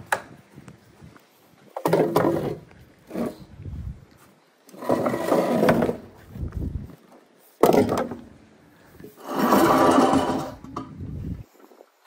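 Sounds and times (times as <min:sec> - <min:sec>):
chair scraping on brick paving: 0:01.8 - 0:03.5, 0:04.7 - 0:06.2, 0:09.2 - 0:10.9.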